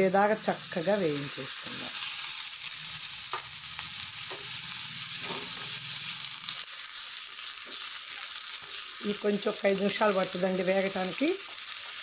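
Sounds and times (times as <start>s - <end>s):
food sizzling in oil: 0.0s - 12.0s.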